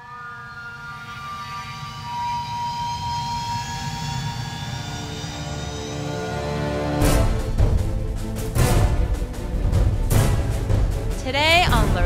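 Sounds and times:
jet engine whine spooling up: 0.0 - 7.0.

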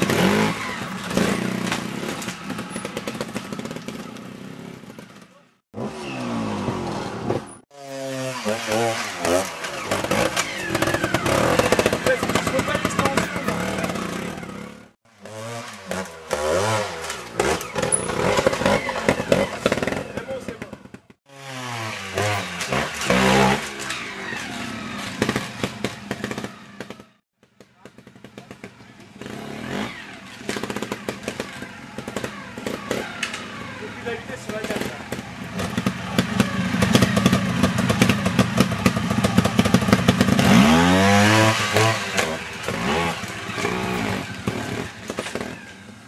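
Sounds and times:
motorcycle engines revving: 0.0 - 46.0.

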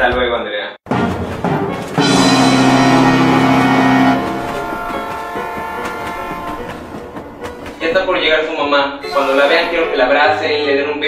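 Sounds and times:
electric train pulling in: 2.0 - 11.0.

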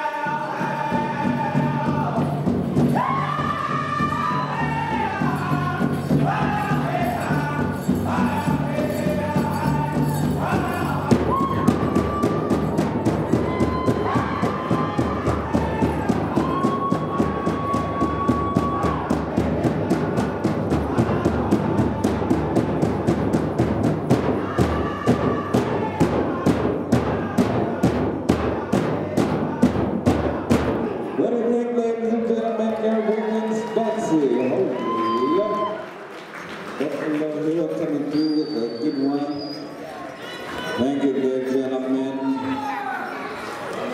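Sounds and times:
high-pitched group singing: 0.0 - 23.4, 24.1 - 31.1
bass drum beat: 0.7 - 31.0.

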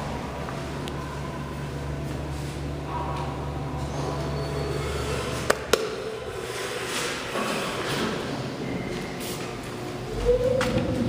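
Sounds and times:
elevator machinery humming: 0.0 - 6.7, 7.9 - 11.0
faint rumble: 8.6 - 11.0.

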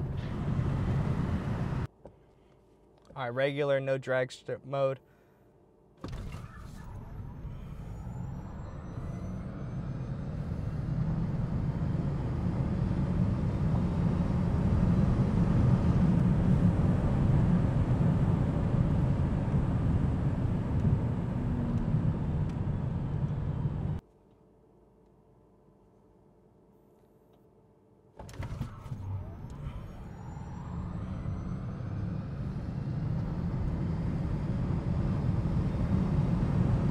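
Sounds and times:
road and wind noise rumble: 0.0 - 1.9, 6.0 - 24.0, 28.2 - 36.9.

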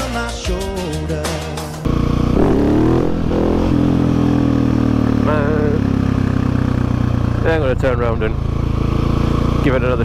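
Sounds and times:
motorcycle engine accelerating: 1.8 - 10.0
person talking: 5.2 - 5.8.

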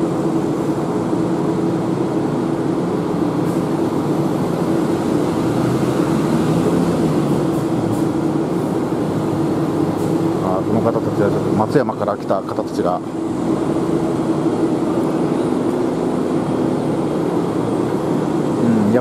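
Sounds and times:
tram mechanical hum: 0.0 - 19.0.

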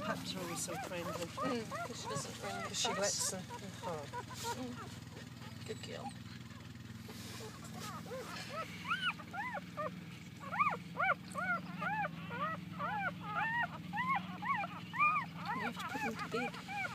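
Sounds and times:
dog whimpering: 0.0 - 6.6, 7.3 - 16.9.

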